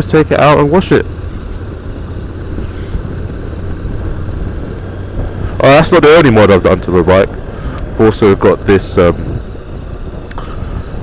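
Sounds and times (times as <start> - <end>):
motorcycle engine rumble: 0.0 - 11.0
wind on microphone: 7.3 - 11.0.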